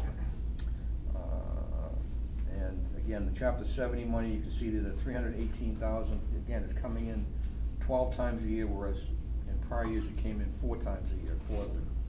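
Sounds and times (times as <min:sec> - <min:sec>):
low hum: 0:00.0 - 0:12.0
man saying uh: 0:01.1 - 0:03.2, 0:09.5 - 0:11.9.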